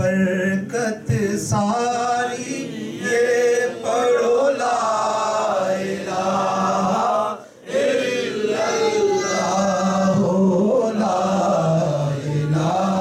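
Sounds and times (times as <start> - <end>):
men singing unaccompanied chant: 0.0 - 13.0.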